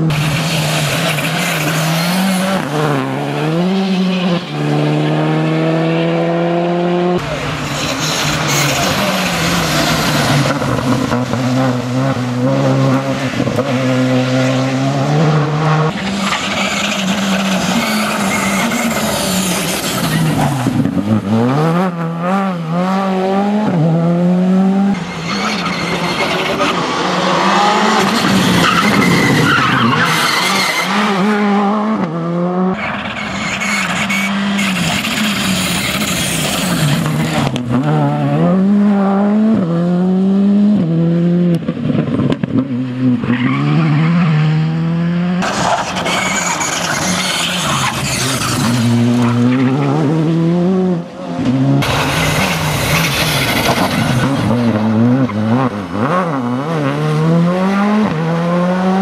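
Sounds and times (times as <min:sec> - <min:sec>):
rally car engine revving: 0:00.0 - 0:59.0.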